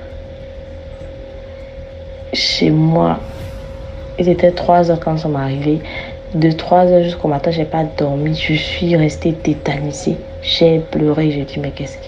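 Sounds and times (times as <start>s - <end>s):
background hum: 0.0s - 12.0s.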